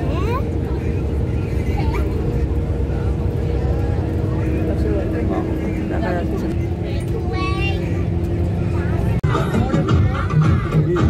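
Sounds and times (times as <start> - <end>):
vehicle road rumble and engine hum: 0.0 - 11.0
voices talking: 0.0 - 11.0.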